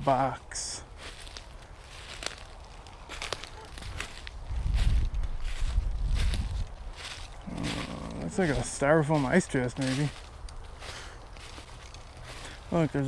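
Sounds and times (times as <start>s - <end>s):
footsteps through dry leaves: 0.0s - 13.0s
low microphone rumble: 3.8s - 8.8s.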